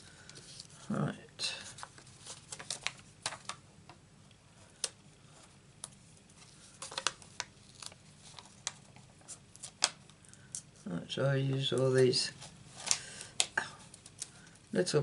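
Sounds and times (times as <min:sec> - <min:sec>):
faint steady hum: 0:00.0 - 0:15.0
paper crinkling: 0:01.5 - 0:03.6, 0:04.8 - 0:10.9, 0:11.7 - 0:14.6.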